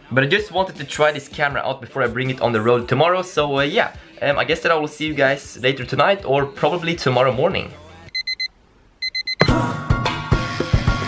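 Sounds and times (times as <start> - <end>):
alarm clock beeping: 8.2 - 9.5.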